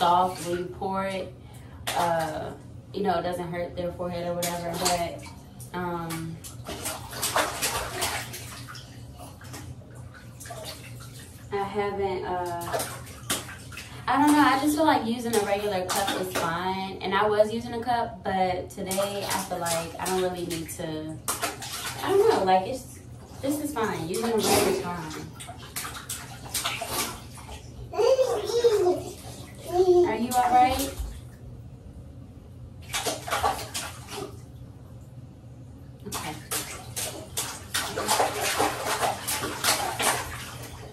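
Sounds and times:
bath water splashing: 0.0s - 31.9s, 32.7s - 40.9s
baby babbling: 27.9s - 30.2s.

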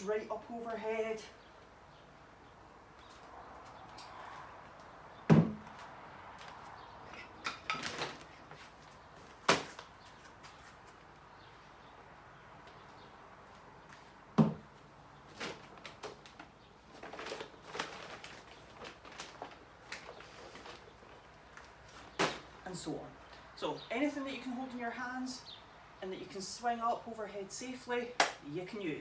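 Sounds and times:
weights knocking on wooden box: 5.3s - 5.7s, 14.4s - 14.7s.

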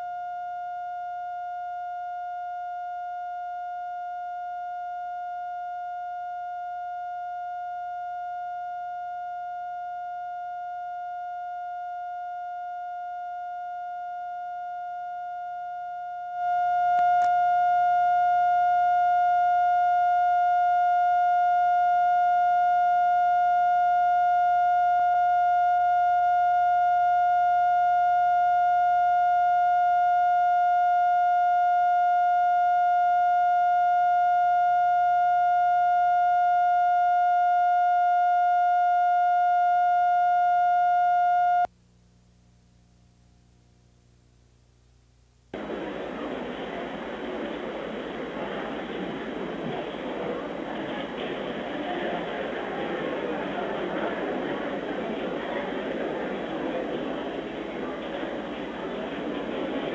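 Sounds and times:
steady test tone: 0.0s - 41.7s, 45.6s - 59.9s
faint low hum: 0.0s - 59.9s.

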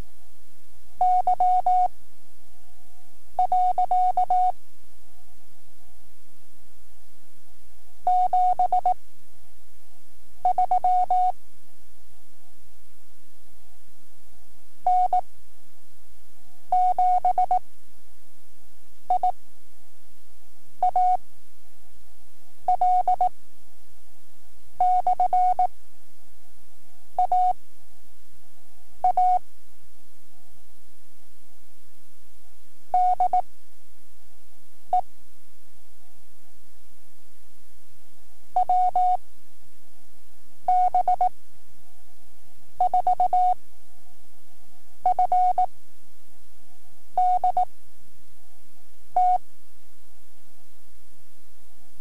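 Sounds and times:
faint tape hum: 0.0s - 52.0s
morse code beeps: 42.8s - 43.6s, 47.2s - 47.7s.

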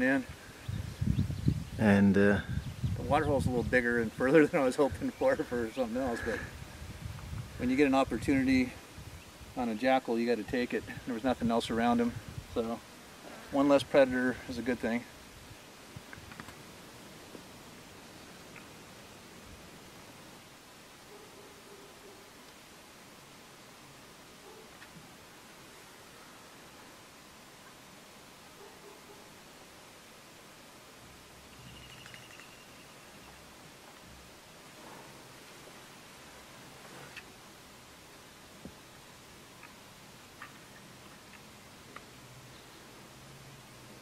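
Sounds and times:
faint steady hiss: 0.0s - 44.0s.

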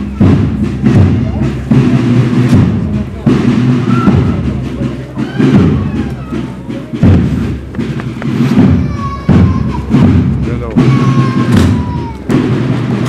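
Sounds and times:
heavy drum beats: 0.0s - 13.0s.

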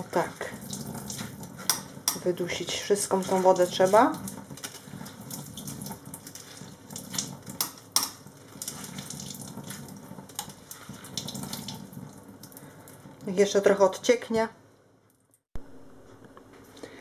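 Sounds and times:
water splashing and dripping: 0.0s - 13.3s.

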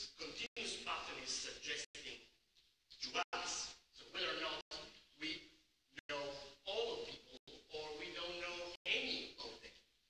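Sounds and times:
man speaking: 0.0s - 2.3s, 2.9s - 9.9s.

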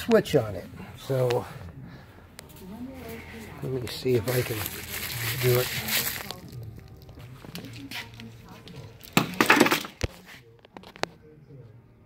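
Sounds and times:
rustling and clattering: 4.2s - 11.1s.

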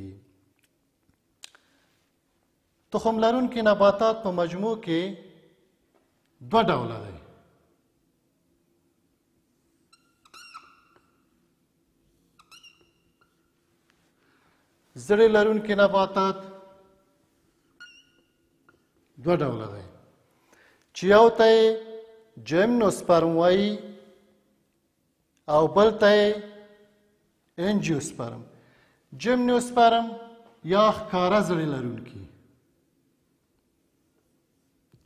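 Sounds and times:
man speaking: 2.9s - 5.4s, 6.4s - 7.4s, 15.0s - 16.8s, 19.2s - 20.1s, 21.0s - 24.1s, 27.6s - 28.5s, 29.1s - 32.4s
whiteboard marker squeaking: 9.8s - 11.3s, 12.0s - 13.5s, 17.6s - 18.9s.

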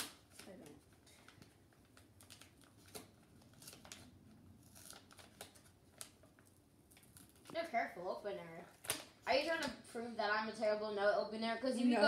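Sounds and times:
paper envelope tearing: 2.2s - 6.2s.

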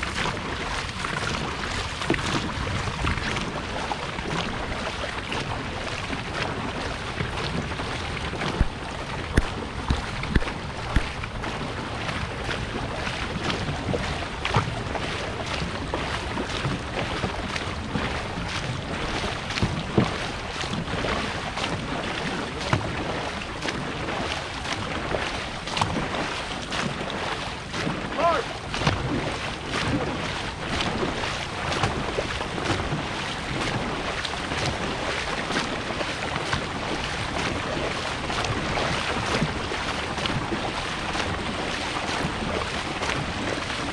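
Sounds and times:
paddles splashing through water: 0.0s - 43.9s
water rushing: 0.0s - 43.9s
wind on microphone: 0.0s - 43.9s.

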